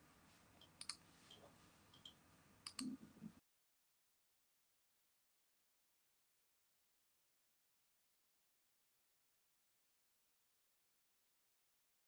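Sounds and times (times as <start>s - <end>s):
faint clicks: 0.6s - 3.3s.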